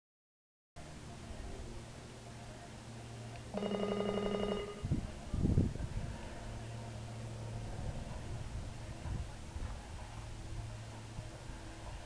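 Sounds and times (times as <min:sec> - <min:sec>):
electric bell ringing: 0:03.6 - 0:04.9.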